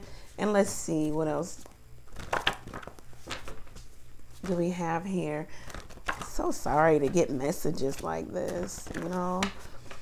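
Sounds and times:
cards flicking and rustling: 0:02.1 - 0:04.6, 0:05.6 - 0:10.0.

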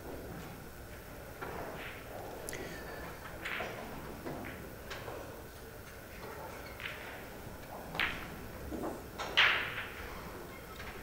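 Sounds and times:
billiard balls clacking: 0:00.0 - 0:11.0
cue tip clicking ball: 0:06.6 - 0:10.0.

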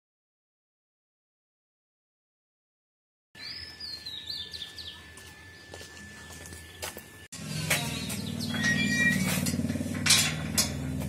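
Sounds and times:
metal gate hinges creaking: 0:07.4 - 0:11.0
short high hinge squeak: 0:07.5 - 0:09.6.

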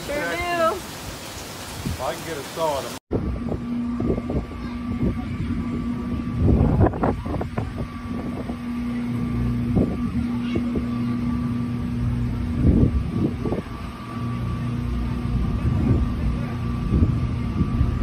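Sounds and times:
wind rumbling on microphone: 0:01.6 - 0:02.1, 0:03.1 - 0:18.0
motor humming: 0:03.1 - 0:18.0.

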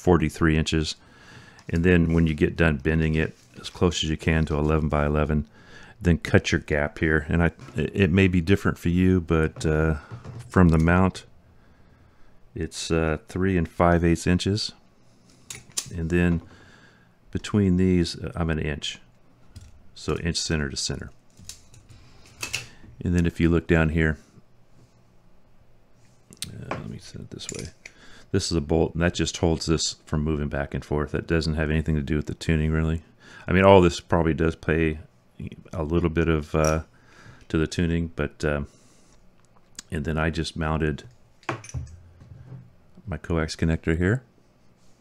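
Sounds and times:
faint handling of metal: 0:26.7 - 0:28.0, 0:41.4 - 0:42.8.

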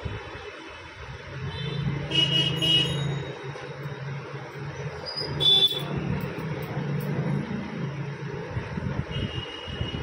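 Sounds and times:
vehicle horns tooting: 0:01.6 - 0:03.2, 0:05.4 - 0:05.9, 0:09.1 - 0:10.0.

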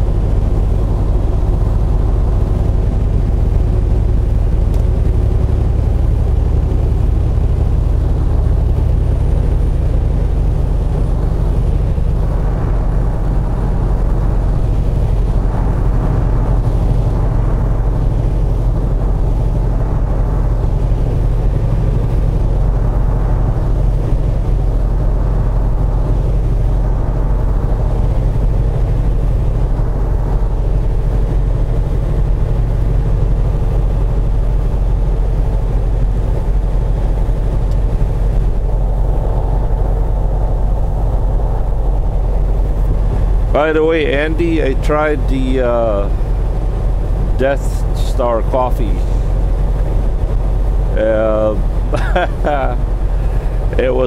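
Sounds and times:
road noise: 0:00.0 - 0:54.0
truck diesel engine droning: 0:00.0 - 0:54.0.

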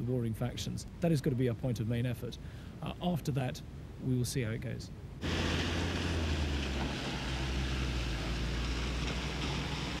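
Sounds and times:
low engine rumble: 0:05.2 - 0:10.0.

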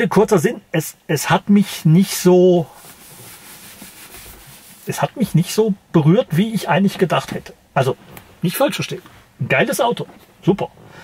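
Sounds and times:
man speaking: 0:00.0 - 0:02.8, 0:04.9 - 0:10.7
faint background hiss: 0:00.0 - 0:11.0
hands rubbing against shirt: 0:02.6 - 0:05.4.

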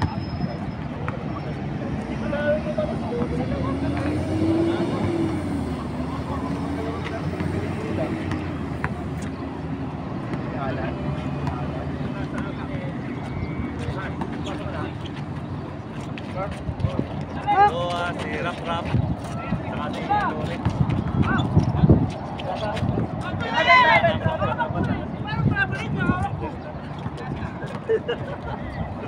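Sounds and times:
road traffic rumble: 0:00.0 - 0:29.0
passing vehicle engine: 0:01.7 - 0:12.1
players calling out: 0:18.5 - 0:29.0.

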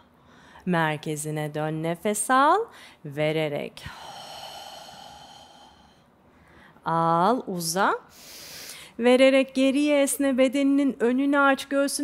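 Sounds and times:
out-breath through mouth: 0:03.9 - 0:06.8.

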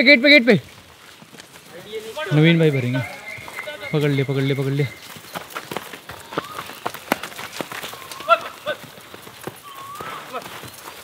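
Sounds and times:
cattle hooves on dry leaves: 0:00.1 - 0:11.0
whistle-like notes: 0:02.6 - 0:05.1.

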